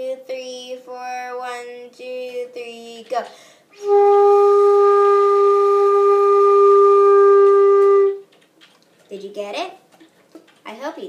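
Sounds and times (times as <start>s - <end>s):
flute holding a long note: 3.8s - 8.2s.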